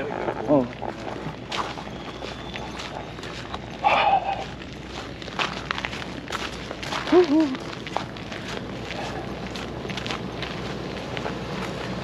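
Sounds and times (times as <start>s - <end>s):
footsteps on icy pavement: 0.2s - 12.0s.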